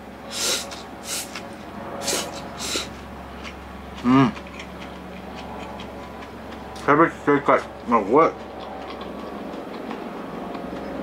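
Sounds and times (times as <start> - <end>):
steady background hum: 0.0 - 11.0
person chewing: 0.3 - 6.8, 7.6 - 11.0.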